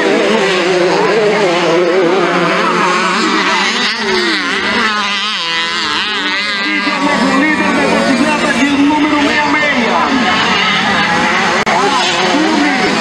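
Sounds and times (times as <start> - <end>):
dirt bike engines racing: 0.0 - 13.0.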